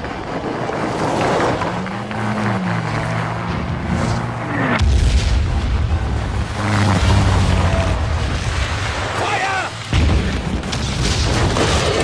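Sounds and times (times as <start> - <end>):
artillery shell explosion: 9.9 - 12.0.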